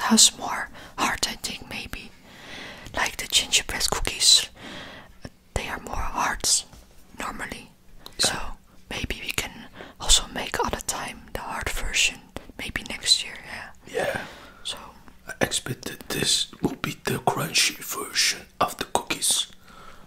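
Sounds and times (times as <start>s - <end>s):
person whispering: 13.9s - 14.8s.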